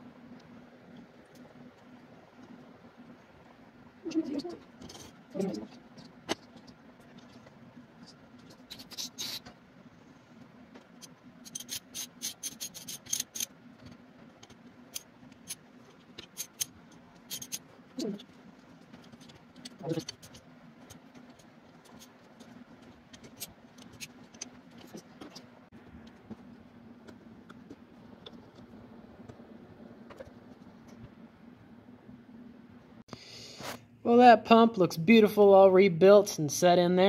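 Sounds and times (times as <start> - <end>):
steady low hum: 0.0 - 37.0
small metal parts clicking: 11.0 - 13.5, 16.2 - 18.3.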